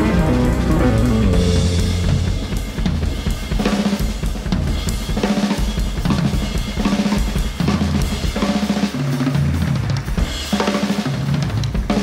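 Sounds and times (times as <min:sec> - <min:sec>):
low held notes: 0:00.0 - 0:03.5
drum kit playing: 0:00.0 - 0:12.0.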